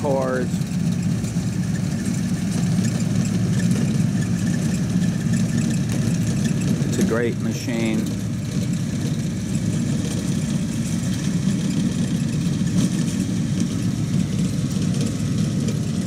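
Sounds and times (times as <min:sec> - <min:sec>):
core aerator pulling soil cores: 0:00.0 - 0:16.0
tractor engine running: 0:00.0 - 0:16.0.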